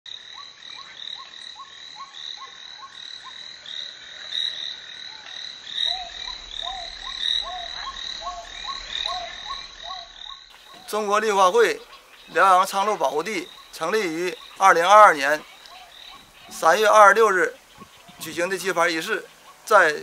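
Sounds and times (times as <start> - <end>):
chorus of short animal calls: 4.5 - 20.0
steady high-pitched background: 4.9 - 20.0
lower-pitched animal call: 5.1 - 20.0.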